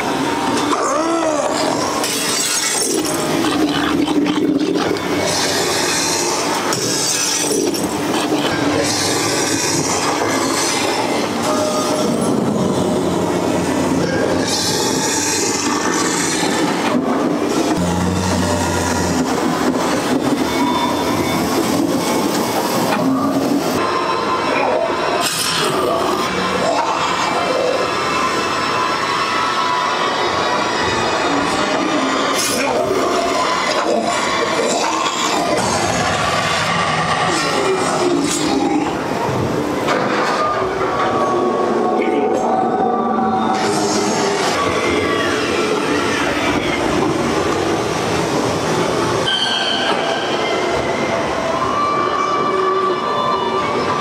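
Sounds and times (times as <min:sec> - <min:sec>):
ambient soundtrack: 0:00.0 - 0:33.8
rumbling and clattering effects: 0:01.4 - 0:29.2.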